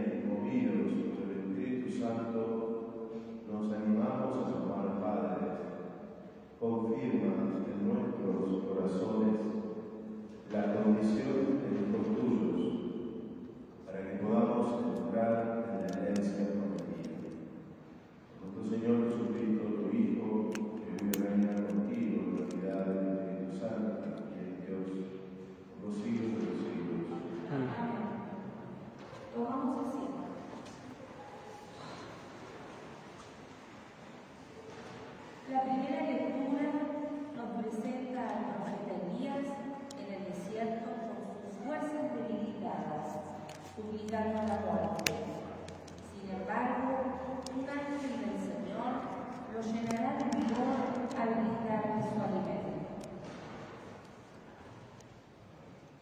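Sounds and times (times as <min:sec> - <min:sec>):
person speaking: 0:13.5 - 0:32.0, 0:35.4 - 0:53.2.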